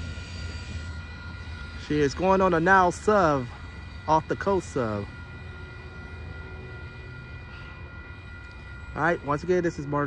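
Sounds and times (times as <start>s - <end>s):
distant vehicles rumbling: 0.0s - 10.0s.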